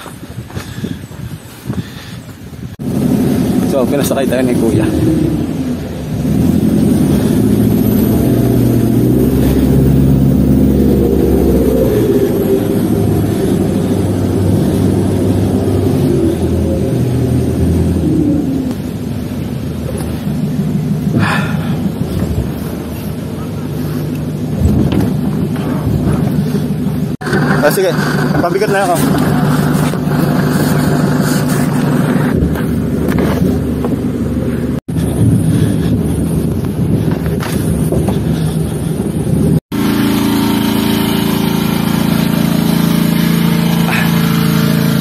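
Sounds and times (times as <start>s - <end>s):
truck engine running under load: 2.8s - 45.0s.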